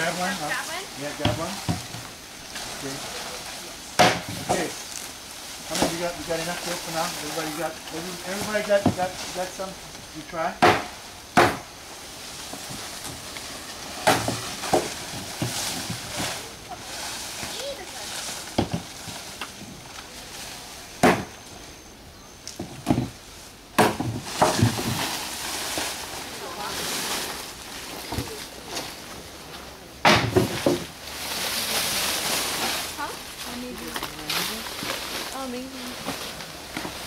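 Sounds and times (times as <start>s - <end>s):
dry palm fronds rustling: 0.0s - 37.0s.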